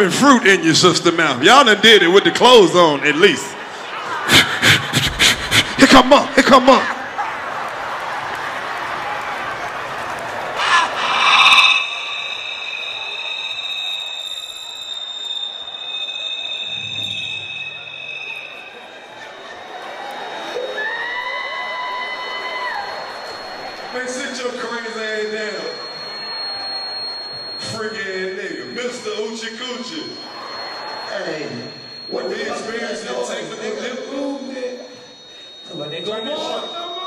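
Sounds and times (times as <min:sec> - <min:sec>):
crowd noise: 0:00.0 - 0:37.0
murmur of a large hall: 0:00.0 - 0:37.0
high electronic whine: 0:10.5 - 0:20.5, 0:22.2 - 0:37.0.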